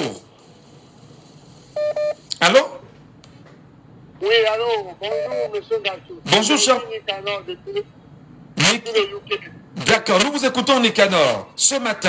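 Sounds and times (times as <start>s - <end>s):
short electronic beeps: 1.8s - 2.2s, 5.1s - 5.5s.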